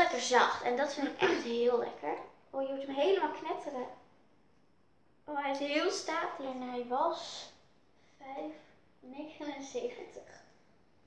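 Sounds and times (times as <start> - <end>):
girls talking: 0.0 - 4.0, 5.3 - 7.6, 8.2 - 10.5.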